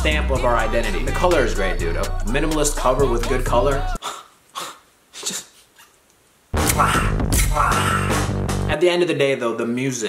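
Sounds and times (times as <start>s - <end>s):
man making kissing smacks: 6.6s - 7.5s.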